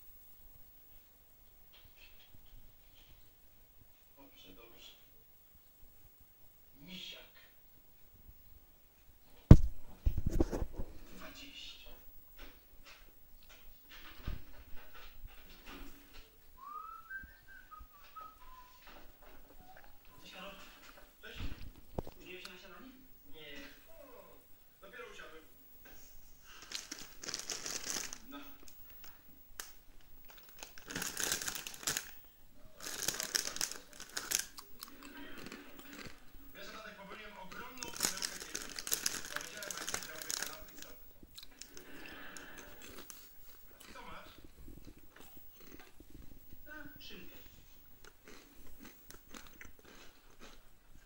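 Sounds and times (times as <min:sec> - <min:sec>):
wrapping crinkling: 0:26.4 - 0:36.2, 0:37.5 - 0:44.0
food crunching clicks: 0:26.6 - 0:32.2, 0:32.8 - 0:36.2, 0:37.5 - 0:44.0, 0:48.0 - 0:50.6
man biting and chewing food: 0:34.1 - 0:36.2, 0:41.2 - 0:46.6, 0:47.8 - 0:51.0.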